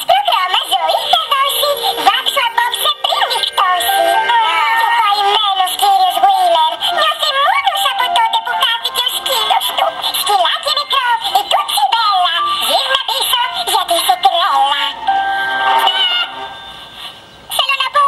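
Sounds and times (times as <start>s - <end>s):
high-pitched voices singing: 0.0s - 17.0s
cartoon song music: 0.0s - 18.0s.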